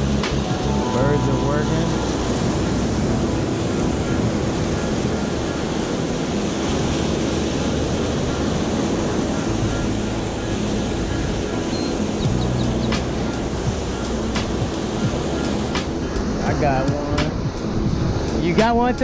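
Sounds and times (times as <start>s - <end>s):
background music: 0.0s - 19.0s
waves washing over rocks: 0.0s - 19.0s
wind buffeting microphone: 0.0s - 19.0s.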